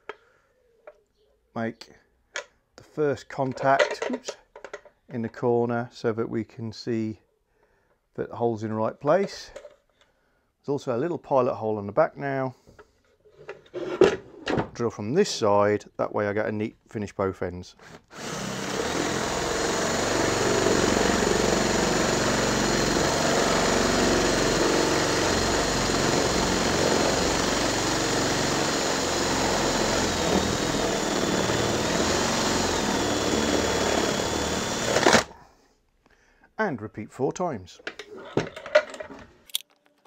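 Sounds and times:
cordless drill boring wood: 0:18.1 - 0:35.4.

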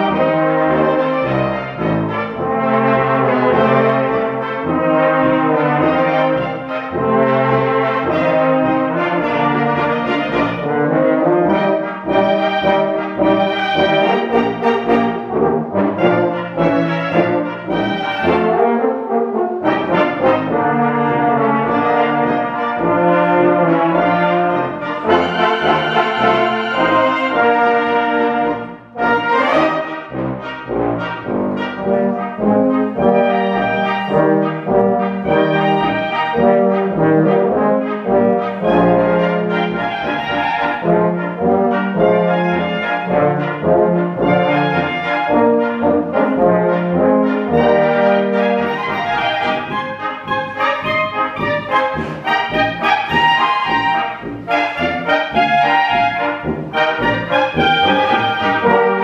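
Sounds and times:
brass band playing: 0:00.0 - 0:59.0
tuba bass line: 0:00.0 - 0:59.0.

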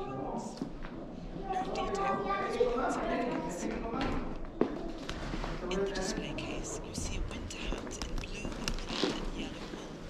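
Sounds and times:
people whispering: 0:00.0 - 0:04.4, 0:05.6 - 0:10.0.

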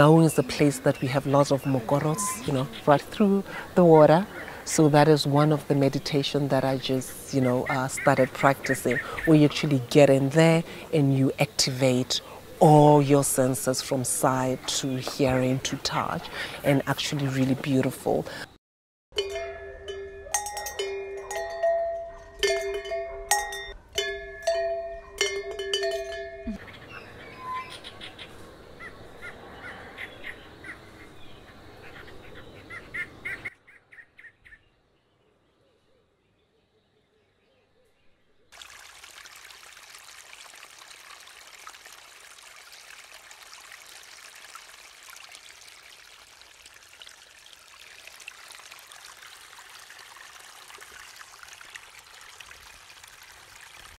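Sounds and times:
birds chirping: 0:00.0 - 0:18.2
outdoor ambience: 0:00.0 - 0:18.6, 0:19.2 - 0:53.9
ringing bell-like struck notes: 0:19.2 - 0:26.6
flowing water rushing: 0:38.6 - 0:53.9.

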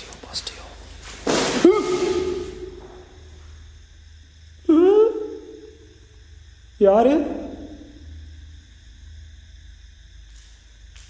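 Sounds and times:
man shouting long calls: 0:01.6 - 0:02.7.

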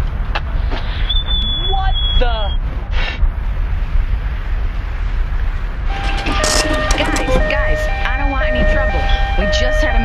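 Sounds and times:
electronic beeping tune: 0:05.9 - 0:09.8
voices: 0:06.0 - 0:10.0.

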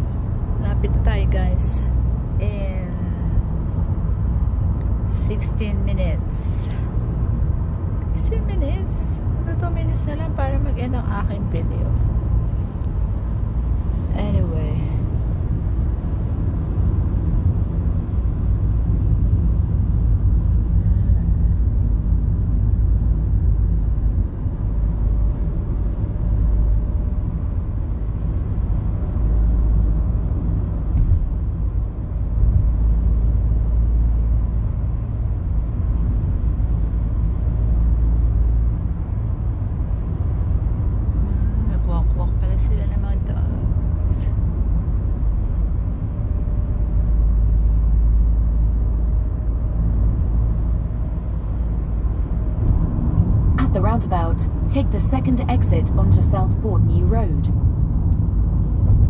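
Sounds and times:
car road and engine rumble: 0:00.0 - 0:59.0.

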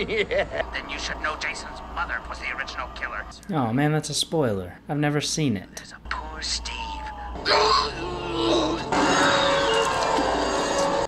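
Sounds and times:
gagged man groaning: 0:07.4 - 0:11.0.

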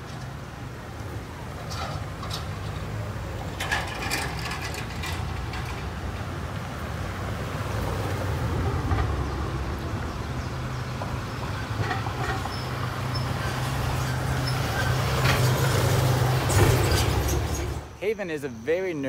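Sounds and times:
traffic engine rumble: 0:00.0 - 0:19.0.

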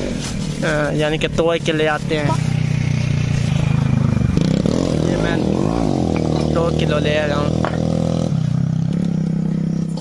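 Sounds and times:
vehicle engine revving: 0:01.6 - 0:10.0.

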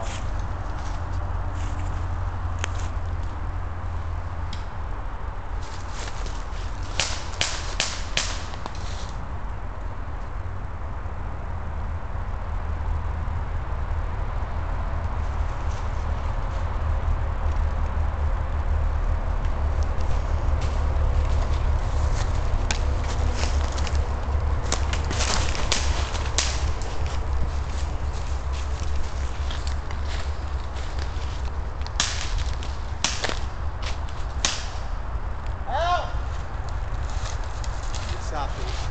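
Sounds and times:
airsoft gun shots: 0:07.0 - 0:08.5.

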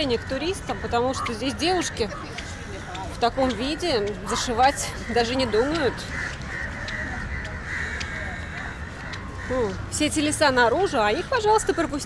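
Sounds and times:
birds calling: 0:00.0 - 0:12.0
low street rumble: 0:00.0 - 0:12.0.

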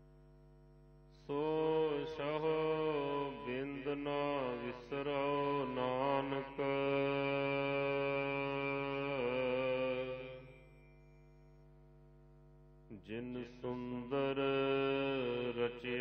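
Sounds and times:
person chanting: 0:01.3 - 0:10.6, 0:12.9 - 0:16.0.

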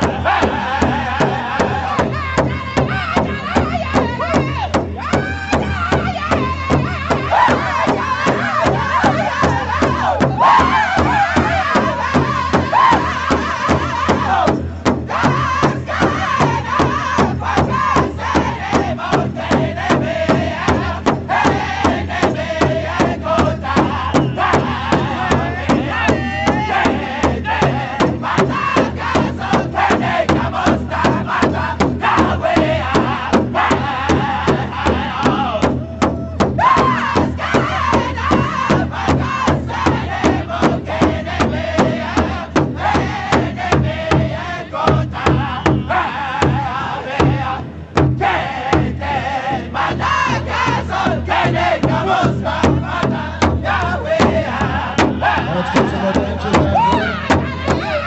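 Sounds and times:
large drum steady beat: 0:00.0 - 0:58.0
men singing in unison: 0:00.0 - 0:58.0.

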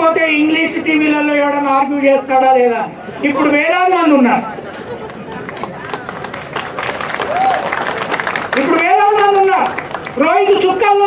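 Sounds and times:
murmur of crowd voices: 0:00.0 - 0:11.0
audience clapping: 0:04.6 - 0:10.6.

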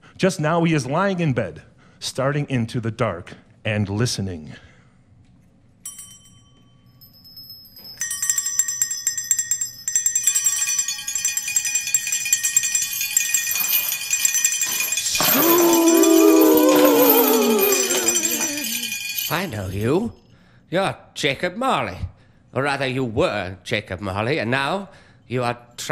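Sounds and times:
small hand bells jingling: 0:05.8 - 0:20.2
voices wailing: 0:15.2 - 0:19.5.

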